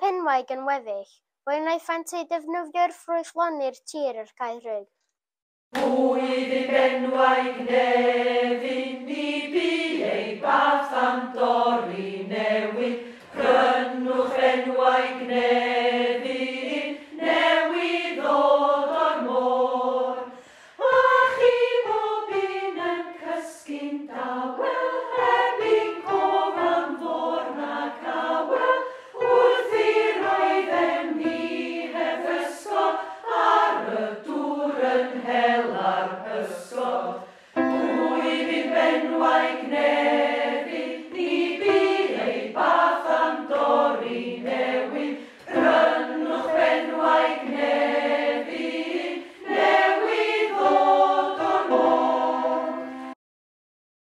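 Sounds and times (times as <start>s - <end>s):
choir singing held notes: 5.8s - 53.2s.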